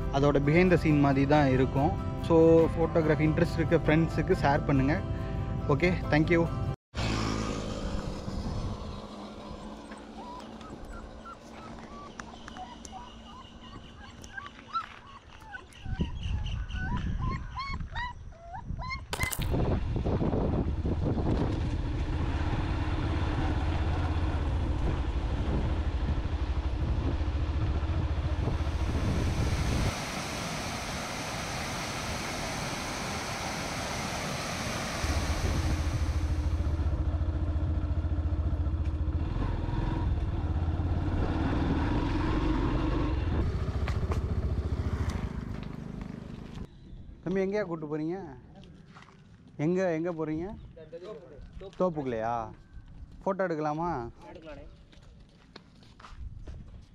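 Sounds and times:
puppy whimpering: 9.5 - 19.3
motorcycle engine running: 20.4 - 46.7.

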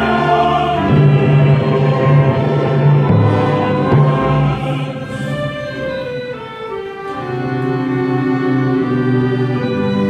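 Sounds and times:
choir singing: 0.0 - 10.0
orchestra of strings and brass: 0.0 - 10.0.

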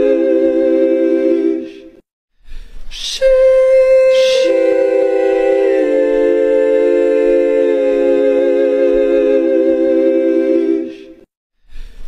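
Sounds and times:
choir-like voices holding a chord: 0.0 - 2.0, 3.2 - 11.3.

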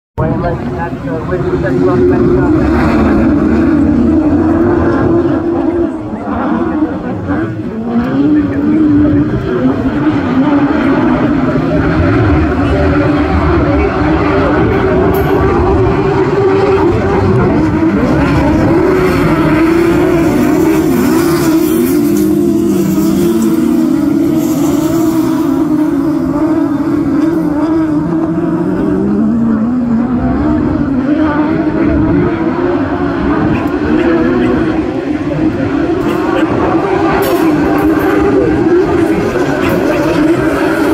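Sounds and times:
racing car engines revving: 0.2 - 40.9.

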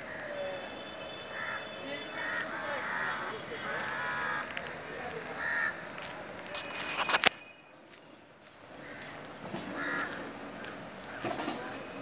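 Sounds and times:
crow cawing: 1.2 - 4.7, 5.3 - 5.8, 8.8 - 9.2, 9.8 - 11.3.

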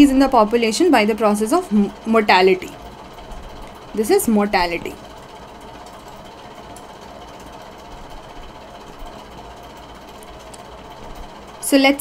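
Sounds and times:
room noise hum and hiss: 0.0 - 12.0.

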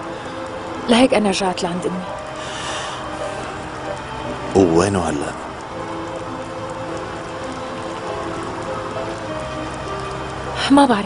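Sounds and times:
soft music of slow held notes: 0.0 - 11.0
steady rain falling: 0.0 - 11.0.

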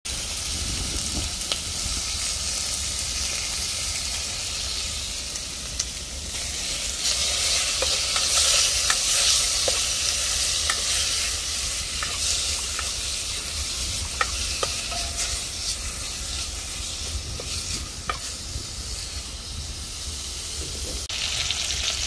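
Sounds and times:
chicken skin sizzling in oil: 0.1 - 22.0
metal spoon clinking on pan: 14.2 - 15.4.

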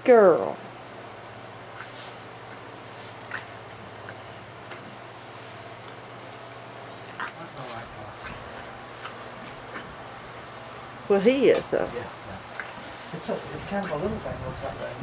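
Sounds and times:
steady low hum: 0.0 - 15.0
straw rustling: 1.8 - 15.0.

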